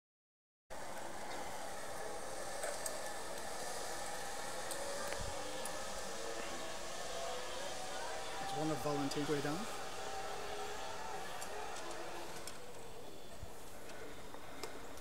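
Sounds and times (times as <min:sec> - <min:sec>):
steady outdoor hiss: 0:00.7 - 0:15.0.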